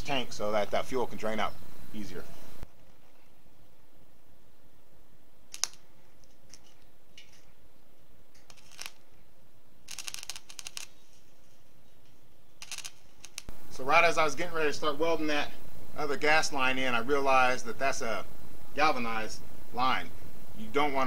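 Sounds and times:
arc welder crackling: 5.5s - 7.4s, 8.3s - 9.2s, 9.8s - 11.3s, 12.5s - 13.6s
sharp click: 5.5s - 7.4s.

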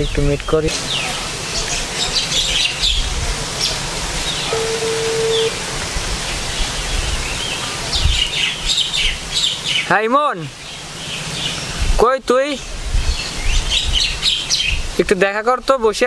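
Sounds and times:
outdoor background hiss: 0.0s - 16.0s
small birds chirping: 0.0s - 16.0s
short steady tone: 4.5s - 5.6s.

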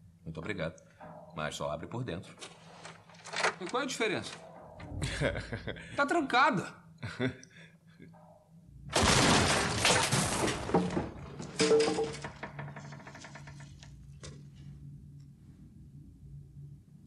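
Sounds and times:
low steady hum: 4.0s - 17.0s
clattering debris: 8.9s - 13.4s
door crashing open: 8.9s - 13.4s
door creak: 11.4s - 14.4s.

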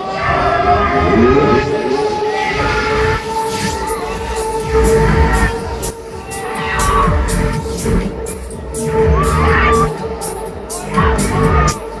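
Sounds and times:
loud ride music: 0.0s - 12.0s
low ride rumble: 0.8s - 9.9s.

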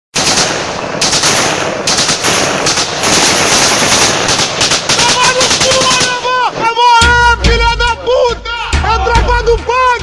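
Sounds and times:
automatic rifle fire: 0.2s - 6.3s.

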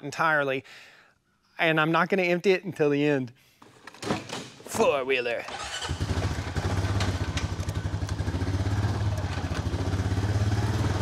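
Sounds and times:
atv engine chugging: 5.6s - 11.0s.

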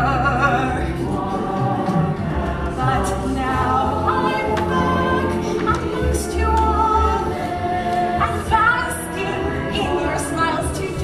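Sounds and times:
voices singing: 0.0s - 11.0s.

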